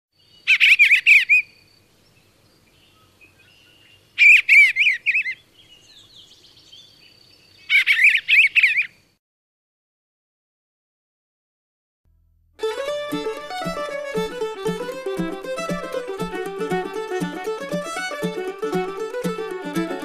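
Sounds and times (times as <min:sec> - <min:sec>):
bird chirping: 0:00.2 - 0:09.2.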